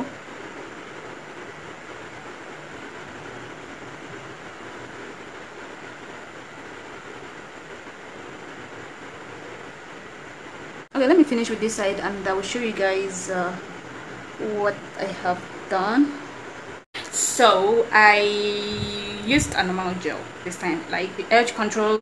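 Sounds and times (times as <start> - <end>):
steady background hiss: 0.0 - 22.0.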